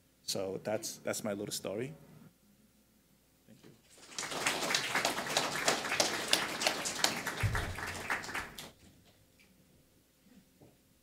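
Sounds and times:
audience applauding: 0:03.9 - 0:08.8.

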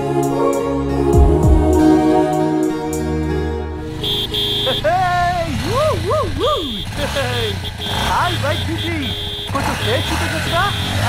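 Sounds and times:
vehicle engine running: 0:03.8 - 0:11.0.

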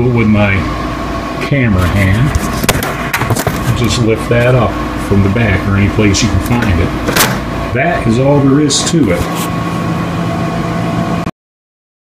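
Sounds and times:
background hum with steady tones: 0:00.0 - 0:11.3.

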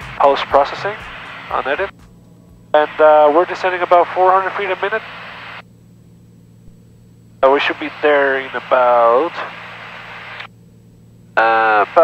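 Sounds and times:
aircraft engine and propeller drone: 0:00.0 - 0:12.0.

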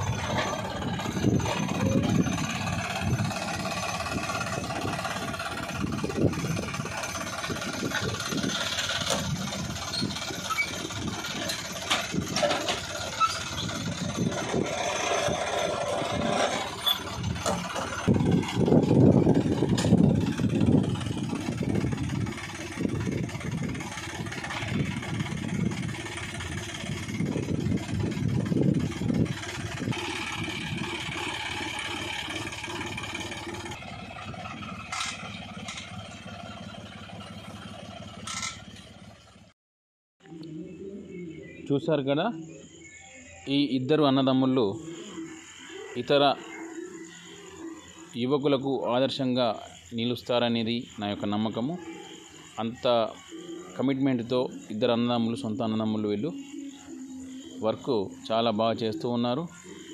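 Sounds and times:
tractor diesel engine running: 0:00.0 - 0:39.6, 0:40.4 - 0:59.9.

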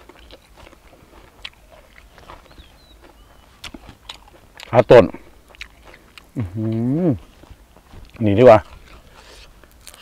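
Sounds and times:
man chewing food: 0:00.0 - 0:10.0.

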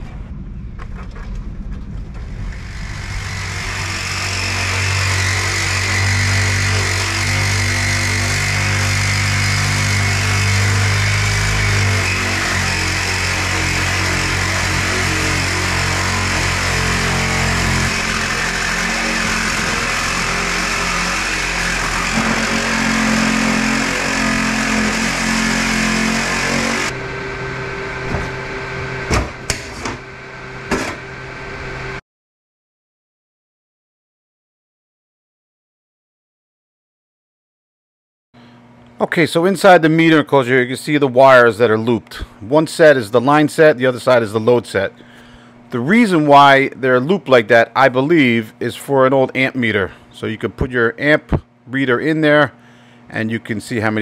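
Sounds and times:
reciprocating saw cutting steel: 0:02.5 - 0:32.0
sharp knocks: 0:28.0 - 0:28.4, 0:29.1 - 0:30.0, 0:30.7 - 0:31.0.

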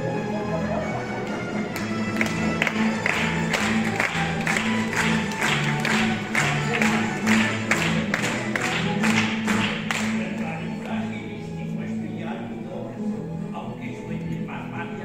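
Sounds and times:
mandolin and guitar orchestra: 0:00.0 - 0:15.0.

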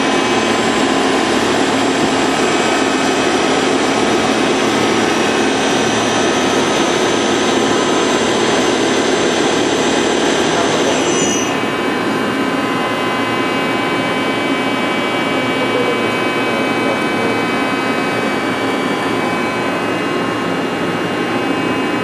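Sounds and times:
high-pitched machine whines: 0:00.0 - 0:22.0
lathe machine running: 0:00.0 - 0:22.0.

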